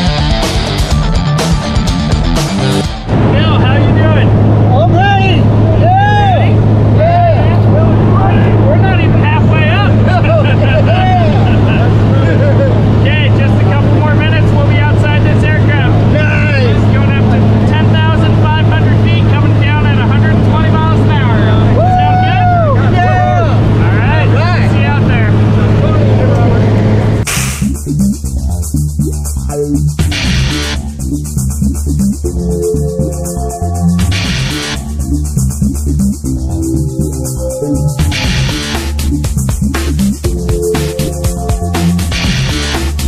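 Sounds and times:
propeller plane engine drone: 0:02.9 - 0:27.3
people talking: 0:03.2 - 0:27.2.

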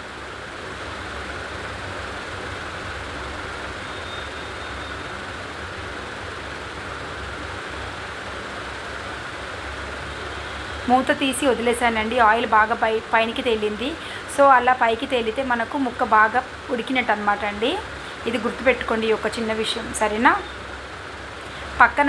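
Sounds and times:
gas burner hissing: 0:00.0 - 0:22.0.

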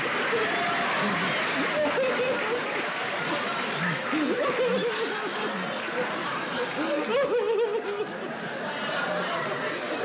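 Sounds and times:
studio audience laughing: 0:00.0 - 0:10.0.

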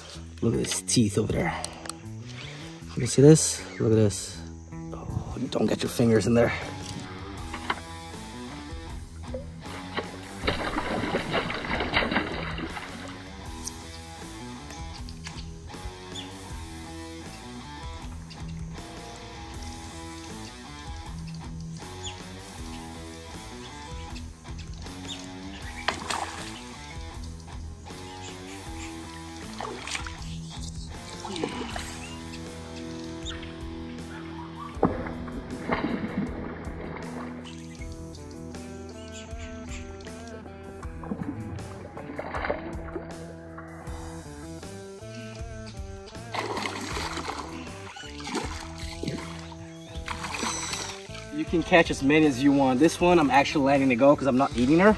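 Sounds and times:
background music: 0:00.0 - 0:54.9.

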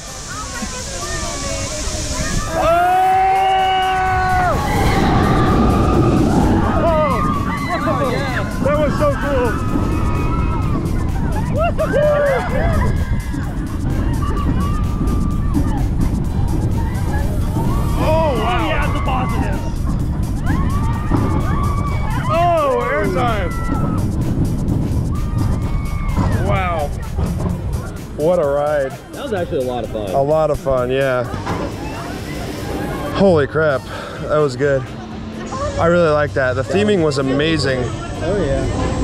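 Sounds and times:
wind rushing on camera: 0:00.0 - 0:28.2
people whooping and yelling: 0:00.0 - 0:33.7
roller coaster train rumble: 0:00.0 - 0:39.0
riders screaming: 0:02.0 - 0:15.8.

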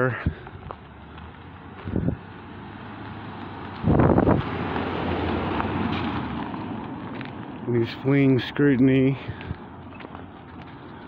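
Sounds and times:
car driving past: 0:01.0 - 0:07.6
wind noise on microphone: 0:01.8 - 0:02.3, 0:03.7 - 0:04.7.

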